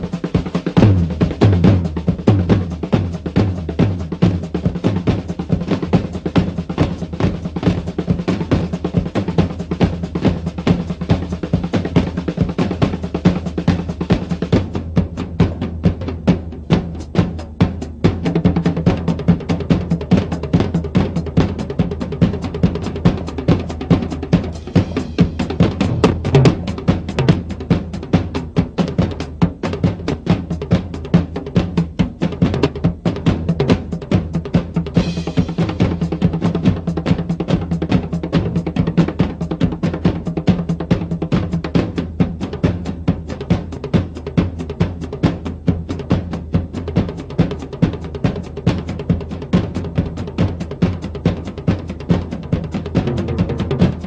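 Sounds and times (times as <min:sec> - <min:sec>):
rock drum kit played fast: 0:00.0 - 0:54.0
low bass: 0:25.7 - 0:26.8.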